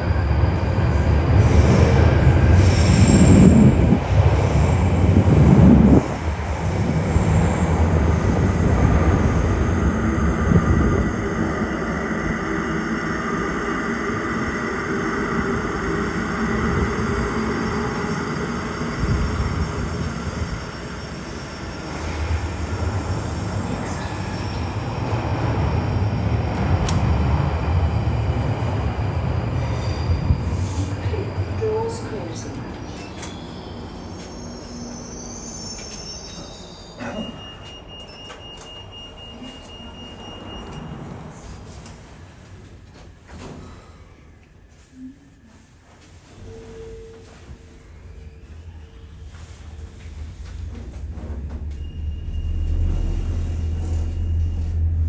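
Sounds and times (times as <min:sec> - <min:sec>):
underground train rumbling in tunnel: 0:00.0 - 0:55.0.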